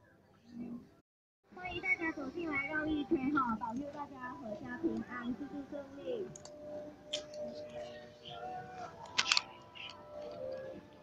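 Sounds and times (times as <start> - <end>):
sharp clicks: 9.0 - 10.4.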